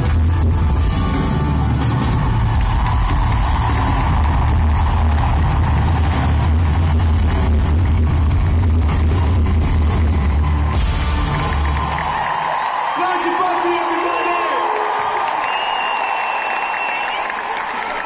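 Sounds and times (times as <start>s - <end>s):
deep bass: 0.0s - 11.9s.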